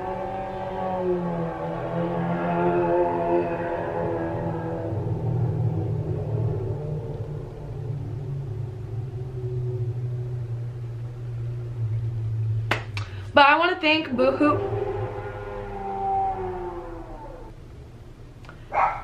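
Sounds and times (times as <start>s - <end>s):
motorcycle engine rumble: 0.0s - 19.0s.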